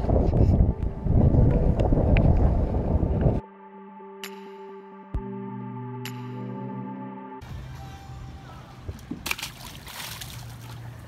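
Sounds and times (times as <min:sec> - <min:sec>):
fish splashing at water surface: 0:09.2 - 0:11.0
disturbed water fizzing: 0:09.3 - 0:11.0.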